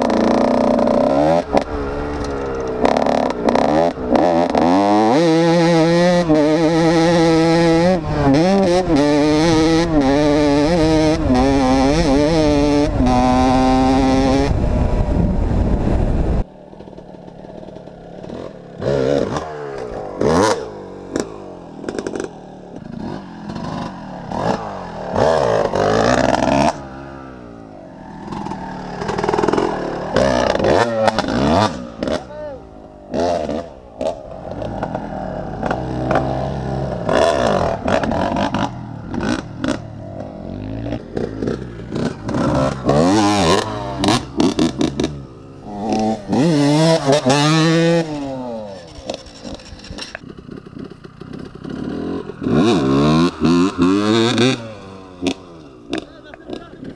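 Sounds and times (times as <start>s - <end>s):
dirt bike engines revving: 0.0s - 56.9s.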